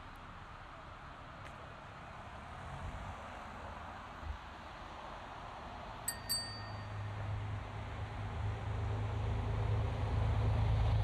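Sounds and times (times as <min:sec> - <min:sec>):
outdoor background noise: 0:00.0 - 0:11.0
small bell dinging: 0:06.1 - 0:07.3.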